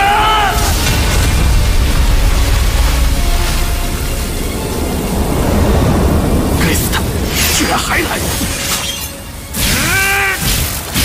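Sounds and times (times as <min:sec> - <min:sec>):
deep continuous rumble: 0:00.0 - 0:09.6
sharp crackle: 0:00.0 - 0:11.0
rushing hiss: 0:00.1 - 0:11.0.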